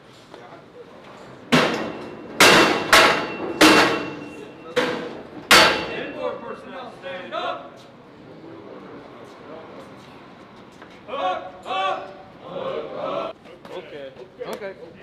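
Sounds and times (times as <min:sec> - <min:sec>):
loud metal bangs and clanks: 0:01.5 - 0:06.3
voices: 0:03.3 - 0:15.0.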